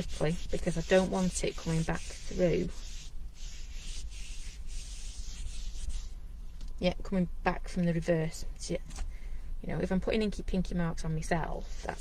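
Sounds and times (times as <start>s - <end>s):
hand rubbing wet paint off wood: 0.0s - 6.1s.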